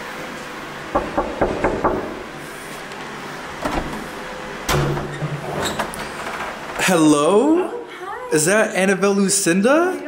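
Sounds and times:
knocking on a door: 0:00.9 - 0:02.2.

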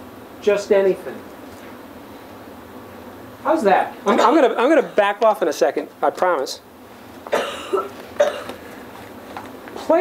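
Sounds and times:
man coughing: 0:07.3 - 0:08.6.

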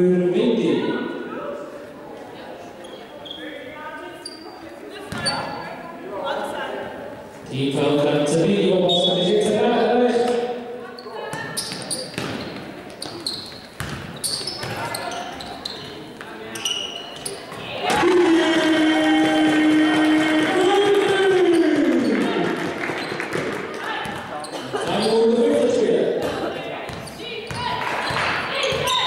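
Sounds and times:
shoe squeaks: 0:02.8 - 0:05.8, 0:10.9 - 0:17.6, 0:24.4 - 0:25.4, 0:26.9 - 0:29.0
basketball bouncing on hardwood floor: 0:11.3 - 0:12.6, 0:13.8 - 0:14.8, 0:26.9 - 0:29.0.

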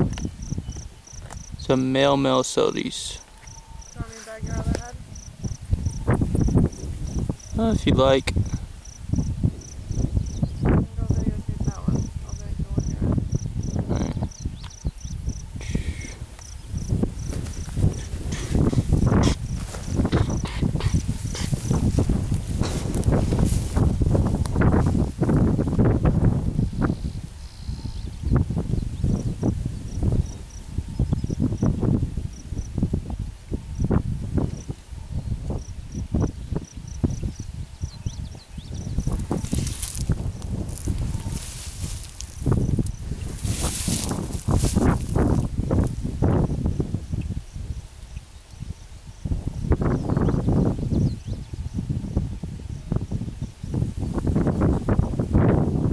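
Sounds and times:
rumbling and rustling on microphone: 0:00.0 - 0:01.9, 0:02.9 - 0:55.9
cricket chirping: 0:00.0 - 0:55.9.

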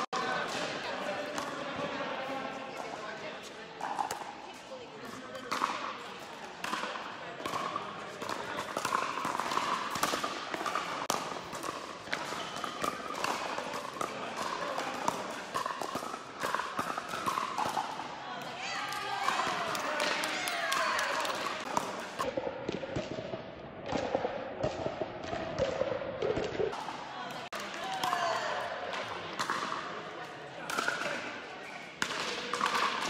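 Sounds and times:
ball bouncing on court: 0:05.3 - 0:29.8
paddles hitting plastic ball: 0:06.4 - 0:23.2, 0:23.9 - 0:29.8, 0:32.0 - 0:33.0.

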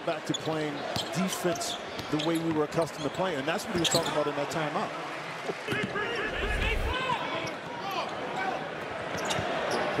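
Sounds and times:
sneaker squeaks: 0:00.3 - 0:04.3, 0:09.1 - 0:09.9.

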